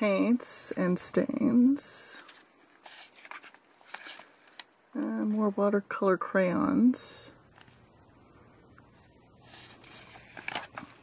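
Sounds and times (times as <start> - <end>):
paper page rustling: 2.2 - 4.7, 9.0 - 11.0.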